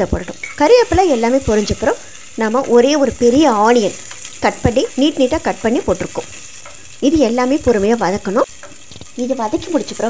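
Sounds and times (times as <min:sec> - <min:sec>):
shallots sizzling in hot oil: 0:00.0 - 0:10.0.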